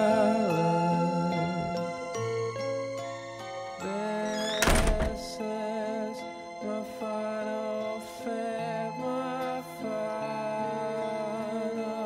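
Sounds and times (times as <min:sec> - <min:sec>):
soft background music: 0:00.0 - 0:12.0
loud thud: 0:04.6 - 0:05.3.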